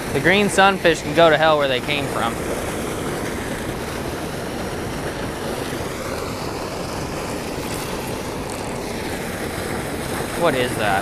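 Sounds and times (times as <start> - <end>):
water rushing from pipe: 0.0 - 11.0.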